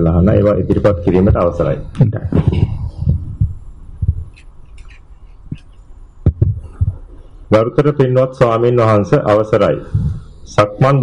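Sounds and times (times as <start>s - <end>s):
man talking: 0.0s - 2.8s, 7.5s - 11.0s
dull low thumps: 0.6s - 4.6s, 5.5s - 7.2s, 9.8s - 10.3s.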